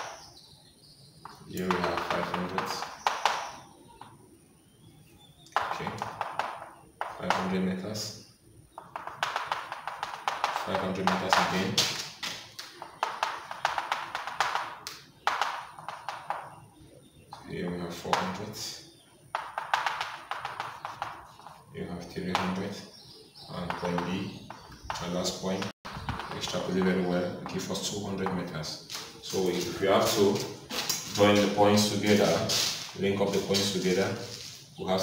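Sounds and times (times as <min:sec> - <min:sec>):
chalk tapping on chalkboard: 0:01.3 - 0:03.6, 0:05.6 - 0:07.5, 0:08.8 - 0:16.6, 0:19.3 - 0:21.7, 0:23.7 - 0:29.7, 0:30.4 - 0:34.7.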